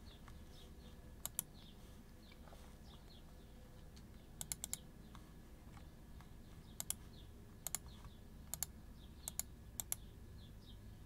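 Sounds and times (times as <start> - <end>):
computer keyboard clicking: 1.2 - 1.5, 4.4 - 4.8, 6.8 - 7.0, 7.6 - 7.9, 8.5 - 10.0.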